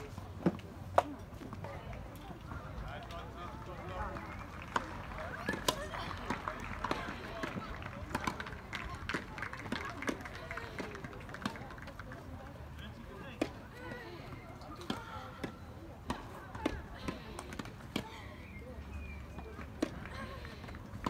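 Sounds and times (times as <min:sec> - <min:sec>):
background talk: 0:00.0 - 0:21.0.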